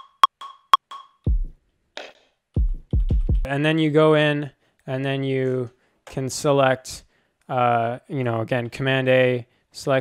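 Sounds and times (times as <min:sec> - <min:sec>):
electronic kick drum: 0:01.3 - 0:01.6, 0:02.6 - 0:03.5.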